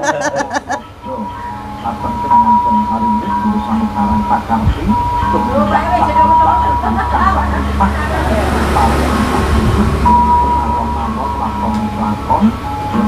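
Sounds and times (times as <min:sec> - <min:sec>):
music from television: 0:00.0 - 0:13.0
steady low hum: 0:00.0 - 0:13.0
steady tone: 0:00.0 - 0:13.0
voices from television: 0:00.0 - 0:13.0.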